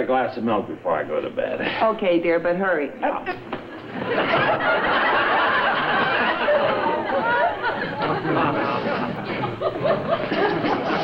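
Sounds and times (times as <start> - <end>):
audience chattering: 3.4 - 11.0
audience laughing: 3.7 - 11.0.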